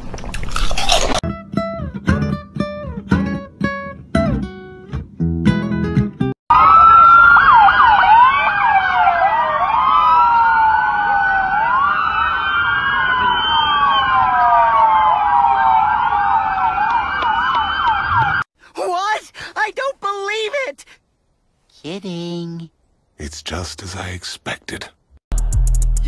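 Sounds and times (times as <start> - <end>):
police sirens wailing: 6.5 - 18.5.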